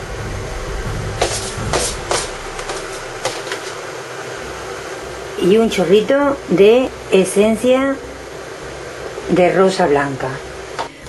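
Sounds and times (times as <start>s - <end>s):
steady low hum: 0.0s - 9.6s.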